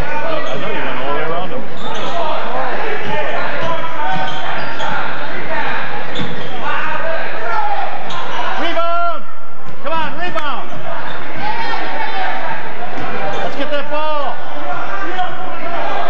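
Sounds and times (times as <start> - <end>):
crowd talking and shouting: 0.0 - 16.0.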